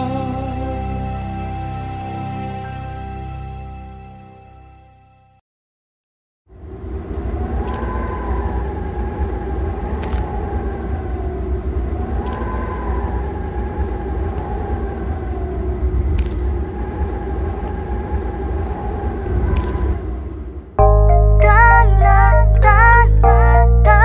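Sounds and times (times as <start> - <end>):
steady low rumble: 6.5 - 24.0.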